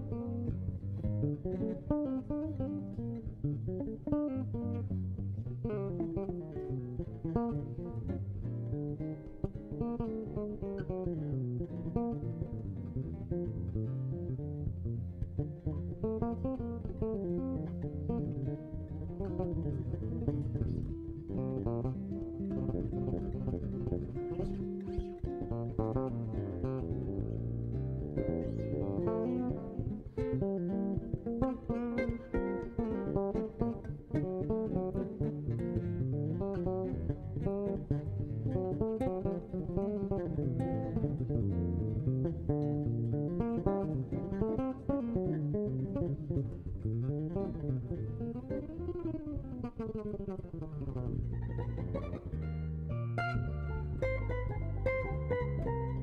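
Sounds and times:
plucked jazz guitar: 0.0s - 56.0s
bass line: 51.3s - 56.0s.

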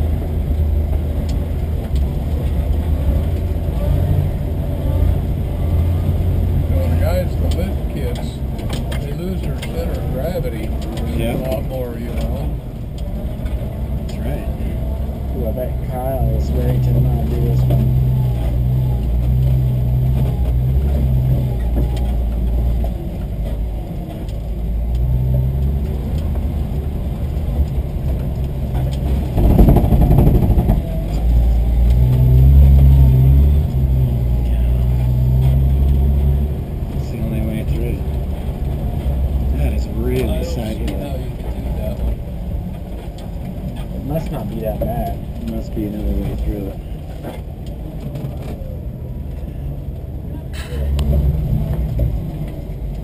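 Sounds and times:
car engine droning: 0.0s - 53.0s.

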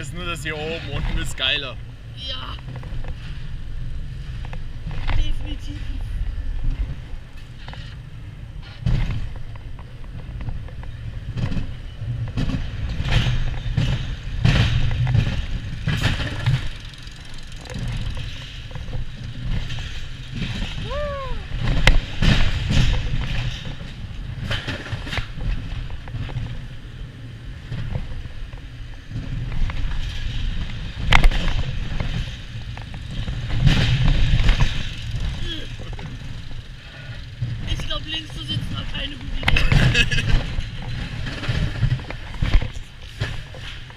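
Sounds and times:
roller coaster car on steel track: 0.0s - 43.9s.

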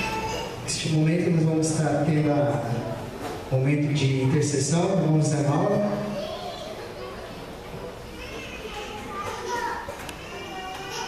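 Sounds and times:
high-pitched voices chattering: 0.0s - 1.0s, 5.5s - 11.0s.

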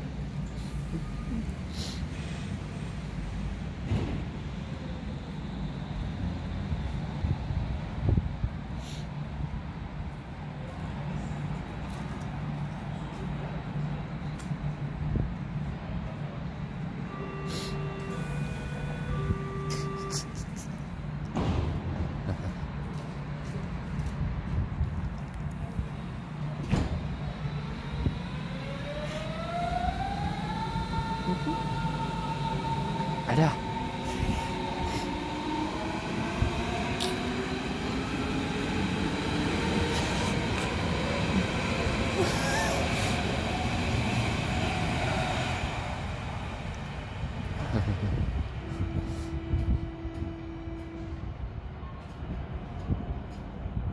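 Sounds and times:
electric train whine rising: 17.0s - 20.4s, 27.0s - 47.6s
person laughing: 31.2s - 31.8s, 42.2s - 43.0s, 47.6s - 48.4s.

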